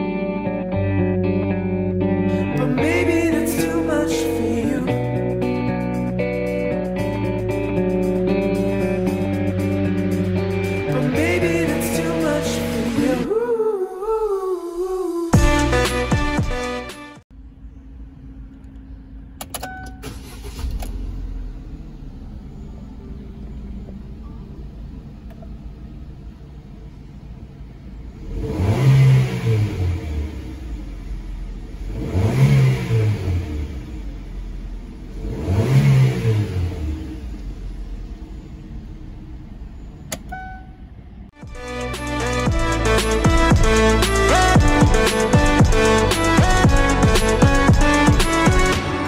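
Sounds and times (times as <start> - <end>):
car engine starting and revving: 0.0 - 17.0, 19.4 - 49.0.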